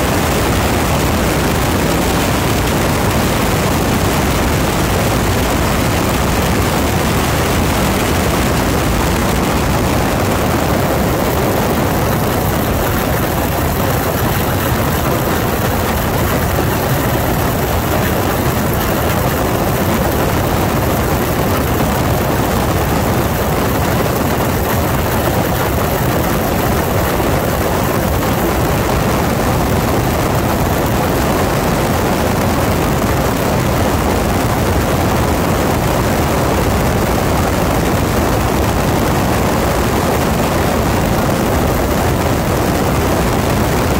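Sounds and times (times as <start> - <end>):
radial aircraft engine and propeller: 0.0 - 43.9
wind rushing over microphone: 0.0 - 43.9.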